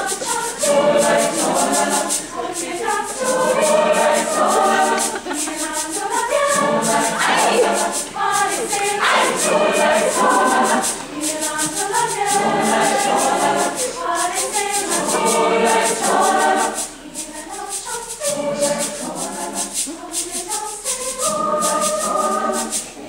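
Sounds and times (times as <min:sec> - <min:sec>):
choir singing in harmony: 0:00.0 - 0:23.0
shaker rattle beat: 0:00.0 - 0:23.0.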